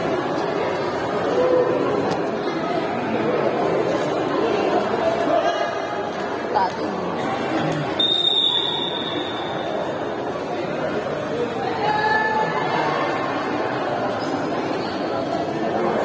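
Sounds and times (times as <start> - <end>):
crowd chatter: 0.0 - 16.0
referee's whistle blast: 8.0 - 9.4.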